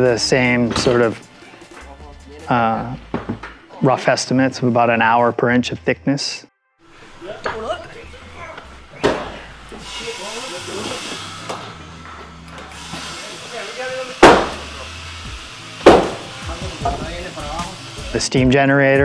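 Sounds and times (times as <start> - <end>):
wood being struck: 3.0 - 3.6, 9.0 - 9.4, 14.2 - 14.8, 15.8 - 17.2
work crew calling out: 7.0 - 15.0.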